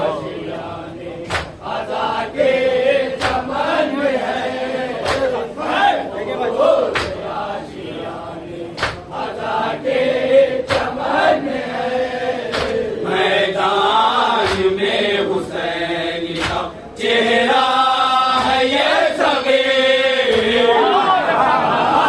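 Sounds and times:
men chanting together: 0.0 - 22.0.

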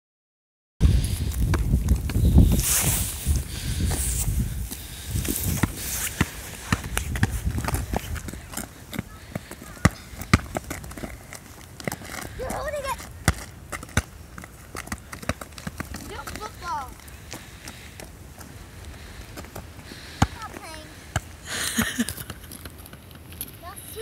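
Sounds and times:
children's running footsteps: 1.0 - 24.0
ball bouncing on asphalt: 1.4 - 2.2, 5.5 - 18.1, 19.4 - 21.4.

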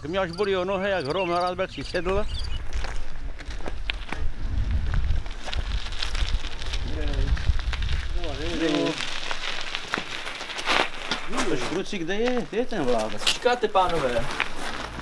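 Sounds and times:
bicycle rolling over gravel: 2.0 - 15.0.

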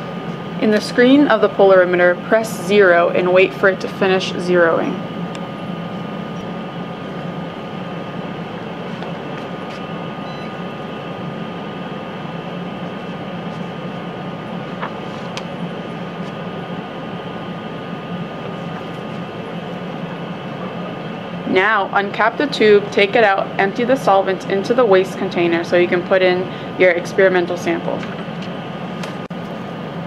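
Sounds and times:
thin high whine: 0.0 - 24.2
ventilation fan hum: 0.0 - 30.0.

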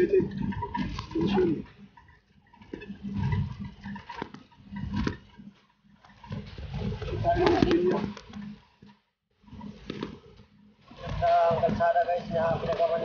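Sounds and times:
indistinct talking: 0.0 - 2.1, 7.0 - 8.3, 10.9 - 13.0.

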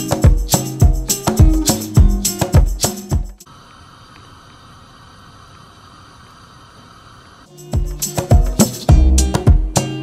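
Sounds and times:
plucked guitar music: 0.0 - 3.4, 7.5 - 10.0
gas burner hissing: 3.4 - 7.5.

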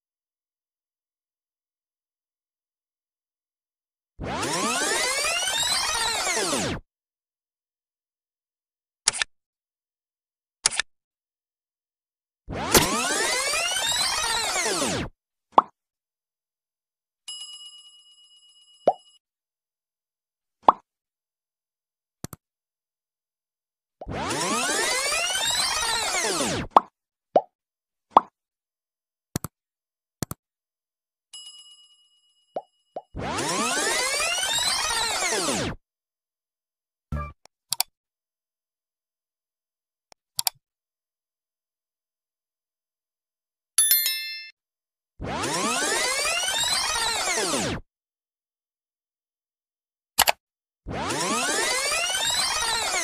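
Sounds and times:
notification bell ding: 43.8 - 44.6.

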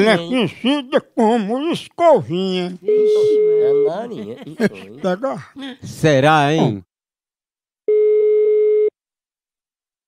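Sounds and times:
telephone ringback tone: 2.9 - 4.0, 7.9 - 8.9.

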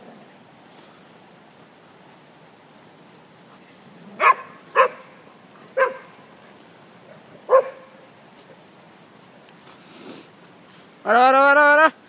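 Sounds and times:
dog barking: 4.2 - 5.2, 5.8 - 6.1, 7.5 - 8.0.

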